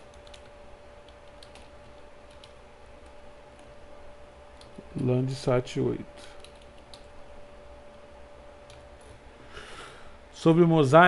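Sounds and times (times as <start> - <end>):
keyboard typing: 0.0 - 3.7, 6.4 - 7.1
faint steady hum: 0.0 - 11.0.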